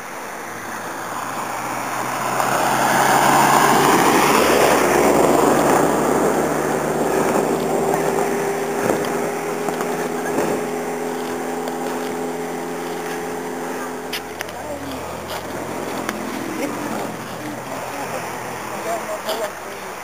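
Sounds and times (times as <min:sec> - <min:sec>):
car engine hum: 0:00.0 - 0:20.0
vehicle passing close by: 0:00.0 - 0:20.0.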